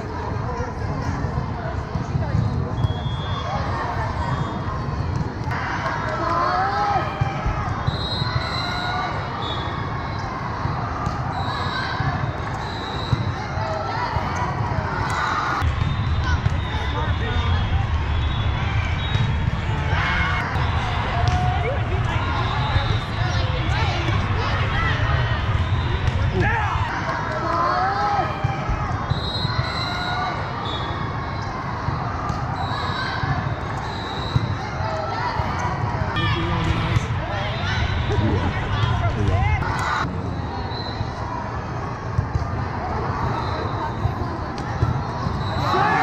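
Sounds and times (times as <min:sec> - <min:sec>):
murmur of many voices: 0:00.0 - 0:46.0
volleyballs struck and bouncing: 0:20.4 - 0:22.2.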